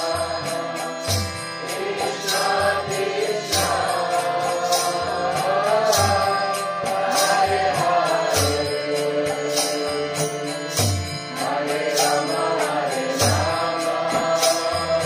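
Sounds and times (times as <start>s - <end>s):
hand cymbal strikes: 0.0s - 15.0s
voices chanting a melody: 0.0s - 15.0s.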